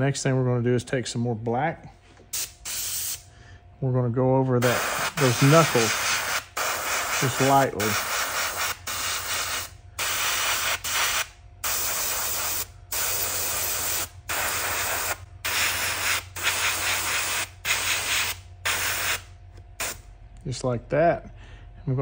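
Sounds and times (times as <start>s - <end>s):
faint low hum: 0.0s - 22.0s
airbrush hissing bursts: 2.3s - 3.3s, 4.6s - 20.0s.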